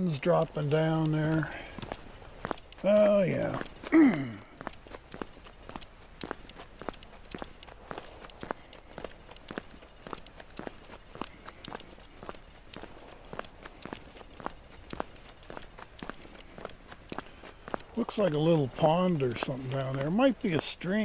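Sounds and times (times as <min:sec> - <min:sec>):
footsteps crunching: 0:00.0 - 0:21.0.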